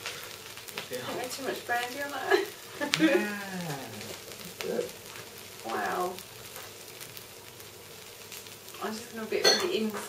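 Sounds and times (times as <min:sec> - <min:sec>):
burning alcohol sizzling: 0:00.0 - 0:10.0.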